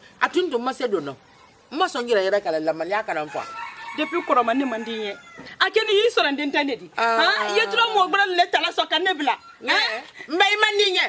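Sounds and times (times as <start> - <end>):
woman talking: 0.2 - 11.0
rooster crowing: 3.2 - 5.7.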